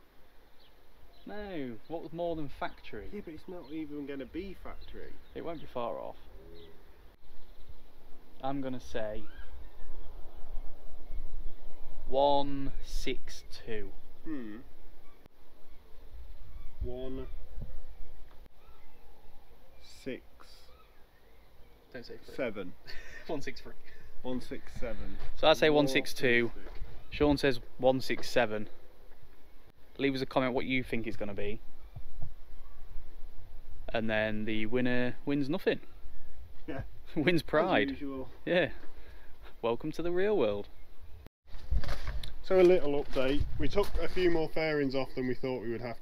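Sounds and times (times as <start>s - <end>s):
wind buffeting microphone: 16.4s - 18.3s, 41.5s - 44.8s.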